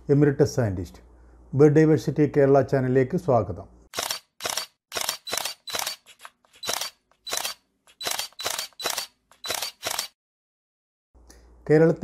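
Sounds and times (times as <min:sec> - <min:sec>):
camera shutter clicks: 0:03.9 - 0:10.2.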